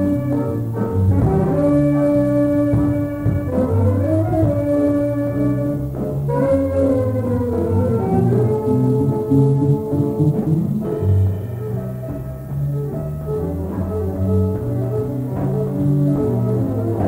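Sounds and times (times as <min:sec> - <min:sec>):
jazz big band playing: 0:00.0 - 0:17.0.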